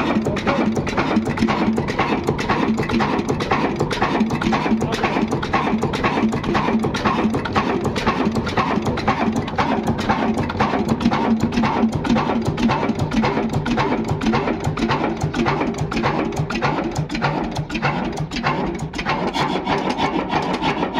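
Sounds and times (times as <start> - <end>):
clatter of mechanical clicks: 0.0 - 20.9
diesel engine chugging: 0.0 - 20.9.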